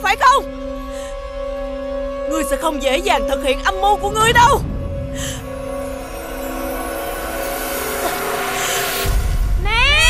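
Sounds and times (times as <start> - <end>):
dramatic orchestral chords: 0.0 - 9.4
rushing noise effect: 4.0 - 7.5.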